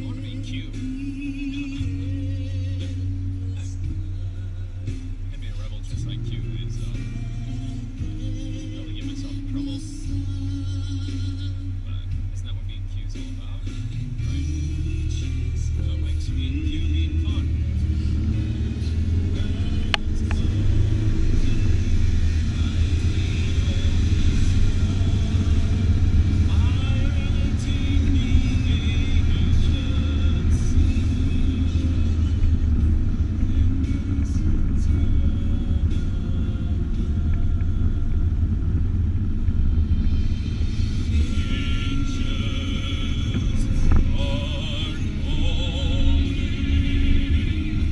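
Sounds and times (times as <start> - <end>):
car road and engine rumble: 0.0 - 47.9
music playing: 0.0 - 47.9.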